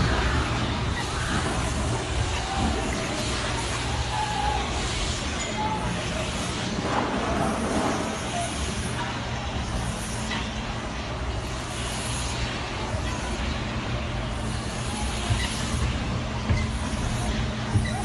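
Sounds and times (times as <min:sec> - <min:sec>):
low traffic rumble with hiss: 0:00.0 - 0:18.0.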